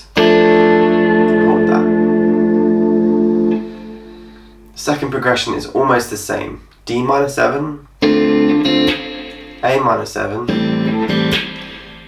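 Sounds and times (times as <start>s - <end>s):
electric guitar chord ringing: 0.0s - 4.8s, 8.0s - 9.8s, 10.5s - 12.0s.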